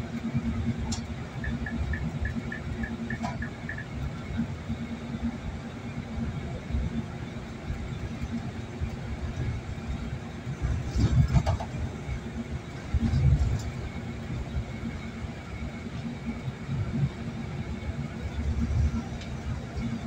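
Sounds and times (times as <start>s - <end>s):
car road and engine rumble: 0.0s - 20.0s.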